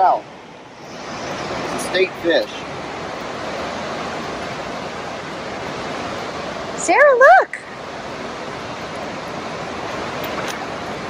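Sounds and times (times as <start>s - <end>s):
river rushing over rocks: 0.0s - 11.0s.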